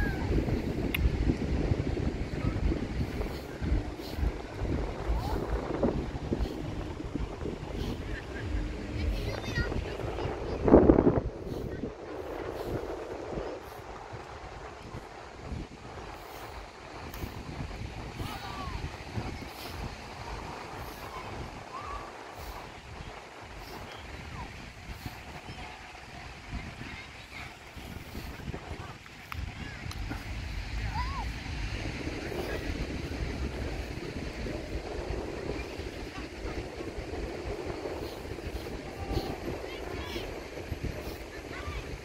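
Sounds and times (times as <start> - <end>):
faint distant voices: 0.0 - 42.0
ocean surf: 0.0 - 42.0
wind buffeting microphone: 0.0 - 42.0.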